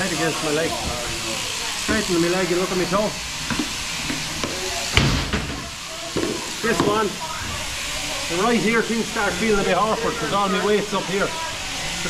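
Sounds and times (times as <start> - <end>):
shearing handpiece hissing: 0.0 - 12.0.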